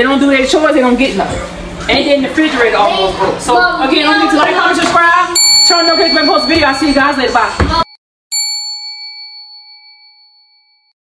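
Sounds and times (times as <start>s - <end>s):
notification bell ding: 5.4s - 10.9s.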